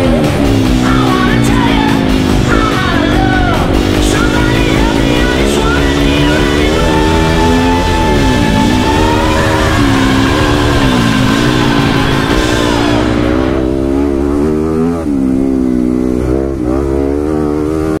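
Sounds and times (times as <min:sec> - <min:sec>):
background music: 0:00.0 - 0:18.0
dirt bike engine revving: 0:00.0 - 0:18.0.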